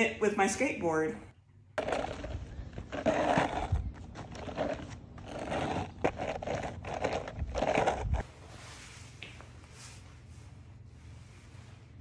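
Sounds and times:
skateboard wheels rolling on asphalt: 0:01.8 - 0:08.2.

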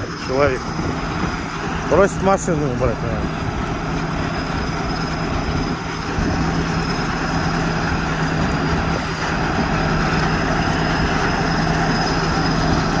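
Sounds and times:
tracked machine diesel engine droning: 0:00.0 - 0:13.0.

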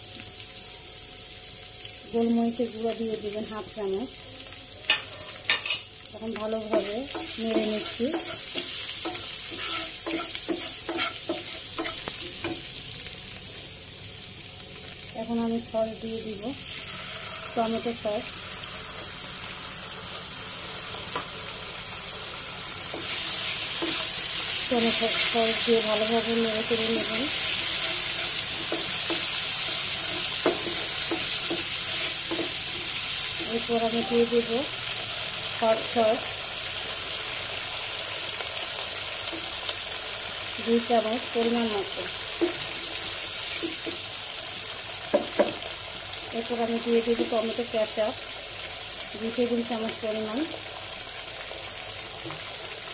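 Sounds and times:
vegetables sizzling in oil: 0:00.0 - 0:52.9
spatula stirring sauce: 0:06.7 - 0:12.0.

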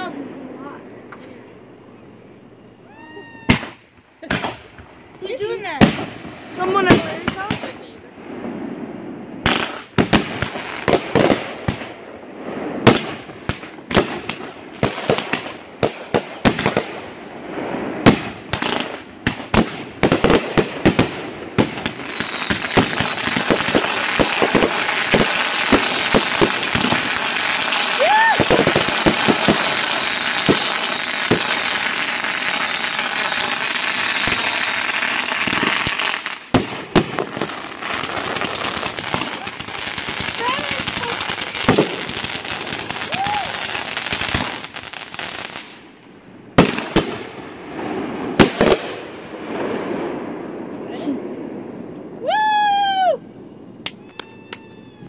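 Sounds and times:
firework crackling: 0:02.8 - 0:53.2
firework bangs: 0:02.9 - 0:52.2.

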